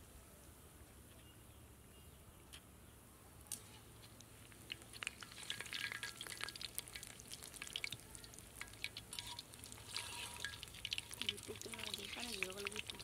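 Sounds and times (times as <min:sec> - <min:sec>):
frying in hot oil: 0:04.4 - 0:13.0
metal spoon scraping pan: 0:09.1 - 0:10.6.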